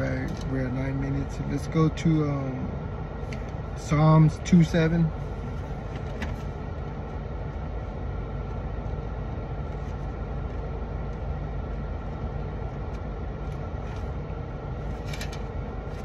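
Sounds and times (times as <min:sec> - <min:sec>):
air conditioning blowing: 0:00.0 - 0:16.0
car engine idling: 0:00.0 - 0:16.0.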